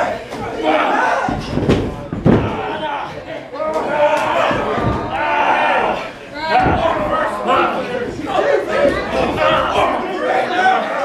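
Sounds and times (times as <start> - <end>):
voices yelling: 0.0 - 1.5, 2.3 - 11.0.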